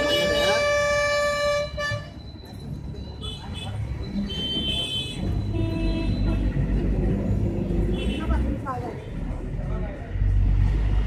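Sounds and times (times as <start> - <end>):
low murmur of a crowd: 0.0 - 11.0.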